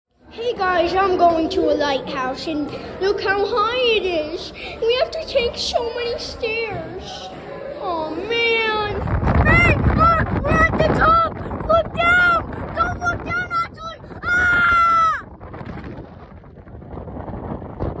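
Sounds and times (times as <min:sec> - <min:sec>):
wind buffeting microphone: 0:08.0 - 0:18.0.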